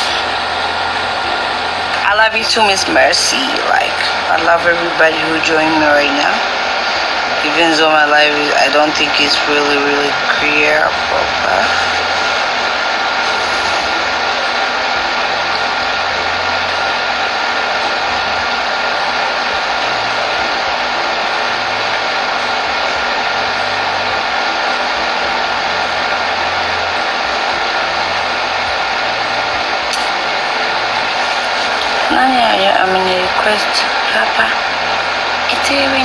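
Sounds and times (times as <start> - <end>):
loud rushing noise: 0.0 - 36.0.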